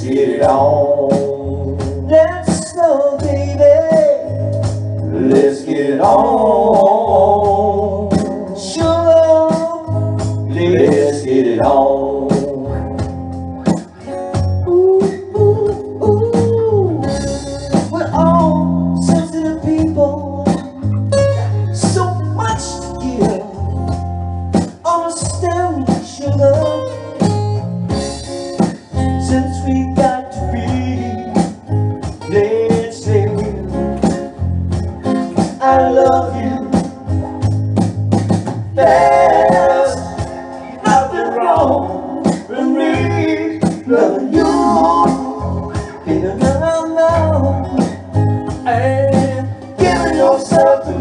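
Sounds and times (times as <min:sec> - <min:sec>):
live blues band playing: 0:00.0 - 0:51.0.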